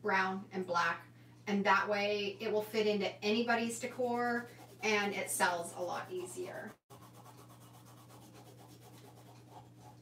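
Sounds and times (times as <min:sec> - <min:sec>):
fingertip rubbing damp paper: 0:03.8 - 0:10.0.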